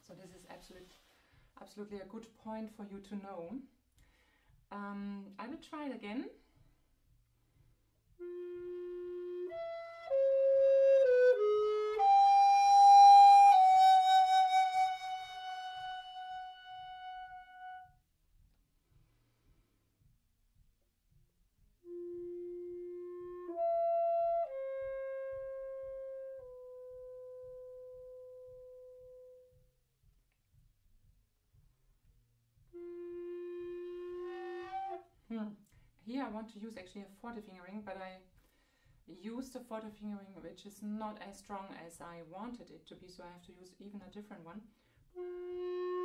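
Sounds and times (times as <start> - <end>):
tenor recorder playing: 8.2 - 18.0, 21.8 - 29.6, 32.6 - 35.1, 45.1 - 46.0.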